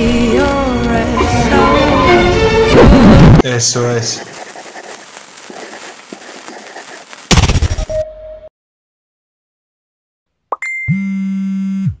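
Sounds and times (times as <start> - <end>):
short high ding: 10.6 - 11.1.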